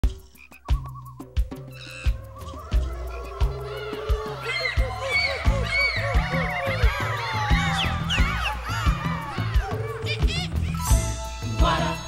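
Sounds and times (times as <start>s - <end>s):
low drum and bass beat: 0.0s - 11.8s.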